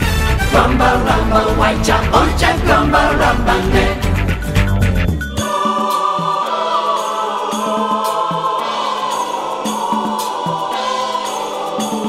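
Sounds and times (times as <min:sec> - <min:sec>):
choir singing held chords: 0:00.0 - 0:04.5, 0:05.2 - 0:12.0.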